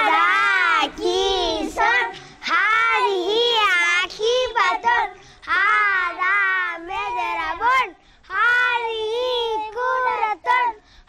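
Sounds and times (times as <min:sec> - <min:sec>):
young children singing: 0:00.0 - 0:10.8.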